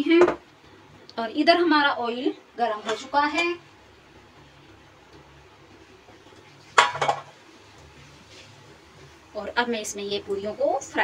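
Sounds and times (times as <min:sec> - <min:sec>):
faint steady hiss: 0:00.0 - 0:11.0
metal kitchenware clattering: 0:02.6 - 0:03.6, 0:06.7 - 0:07.3.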